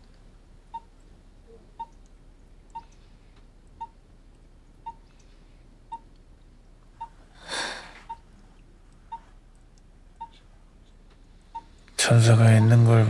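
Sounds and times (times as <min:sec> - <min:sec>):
heart monitor beeping: 0:00.7 - 0:00.9, 0:01.7 - 0:02.0, 0:02.7 - 0:03.0, 0:03.8 - 0:04.0, 0:04.8 - 0:05.1, 0:05.9 - 0:06.1, 0:08.0 - 0:08.3, 0:09.1 - 0:09.3, 0:10.2 - 0:10.4, 0:11.5 - 0:11.8.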